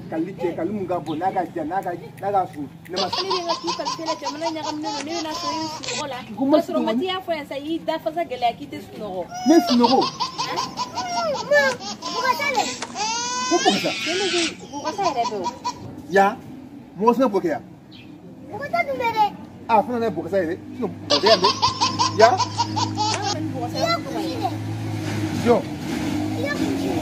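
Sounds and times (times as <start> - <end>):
high-pitched laughing: 2.9 - 6.1, 9.3 - 15.9, 21.1 - 24.3.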